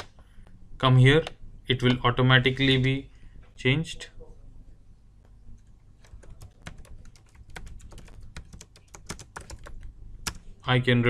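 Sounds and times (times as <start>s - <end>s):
computer keyboard typing: 6.0s - 10.4s.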